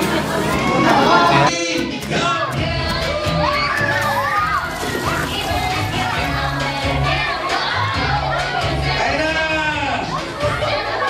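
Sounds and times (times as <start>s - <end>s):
background music: 0.0s - 11.0s
children shouting and squealing: 2.2s - 9.1s, 9.8s - 11.0s.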